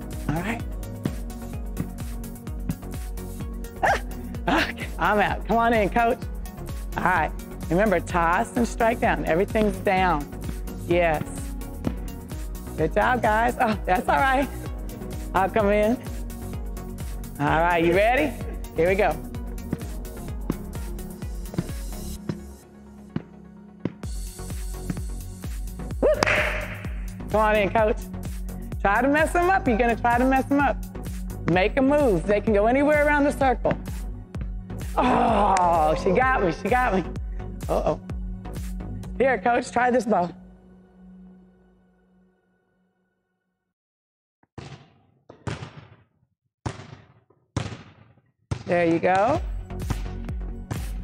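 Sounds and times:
background music with beat: 0:00.0 - 0:39.2, 0:49.2 - 0:51.0
hands slapping a ball: 0:26.1 - 0:27.0, 0:49.1 - 0:50.2
ball bouncing on wooden floor: 0:44.6 - 0:50.1.

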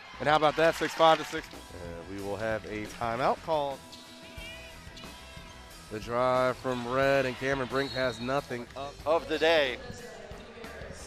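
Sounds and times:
basketball game: 0:00.0 - 0:11.0
faint background music: 0:00.0 - 0:11.0.

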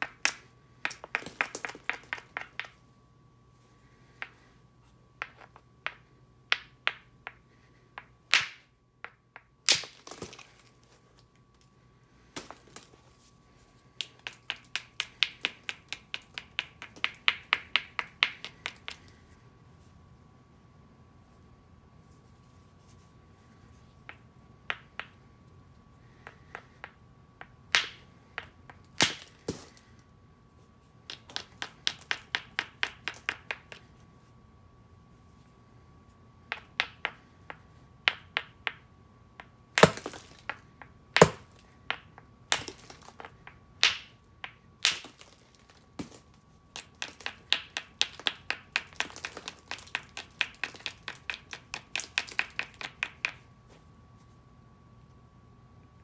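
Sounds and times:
hammerstone striking stone: 0:39.4 - 0:40.6, 0:41.2 - 0:45.3.

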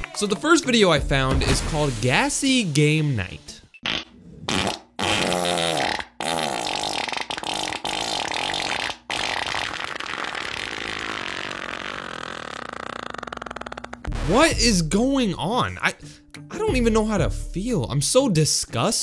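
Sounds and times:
cartoon fart sound effects: 0:03.8 - 0:14.7.

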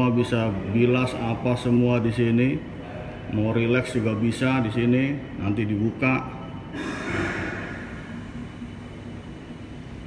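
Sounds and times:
air conditioning hum: 0:00.0 - 0:10.0.

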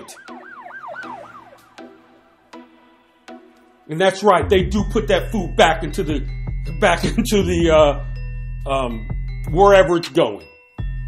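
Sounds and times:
siren-like whooping tone: 0:00.0 - 0:02.6
soft background music: 0:00.0 - 0:11.0.

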